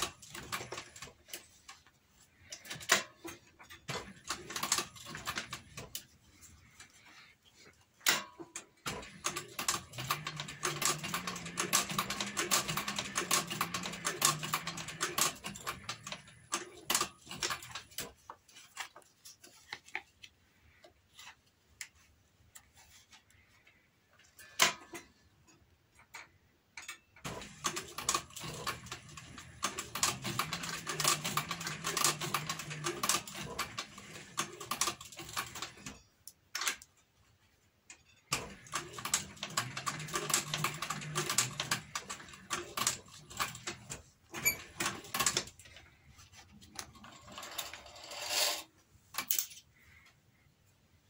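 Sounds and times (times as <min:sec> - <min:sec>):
sewing machine stitching leather: 0:00.0 - 0:01.8, 0:02.4 - 0:06.1, 0:08.2 - 0:18.2, 0:27.2 - 0:36.1, 0:38.2 - 0:45.9.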